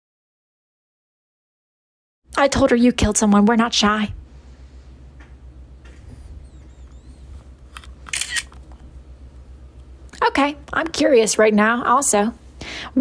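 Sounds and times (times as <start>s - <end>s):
low steady hum: 2.3s - 13.0s.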